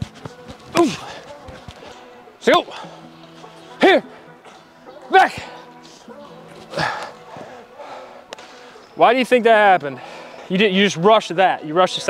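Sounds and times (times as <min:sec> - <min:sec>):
football hitting artificial turf: 0:00.0 - 0:01.9
faint background music: 0:00.0 - 0:12.0.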